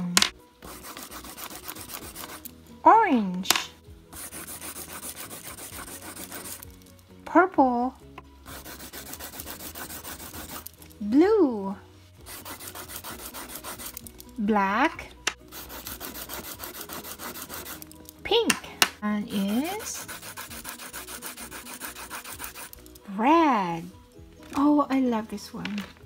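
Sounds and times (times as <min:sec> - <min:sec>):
pencil scribbling on paper: 0:00.6 - 0:02.5, 0:04.1 - 0:06.8, 0:08.4 - 0:10.8, 0:12.2 - 0:14.1, 0:15.5 - 0:17.9, 0:19.4 - 0:22.9.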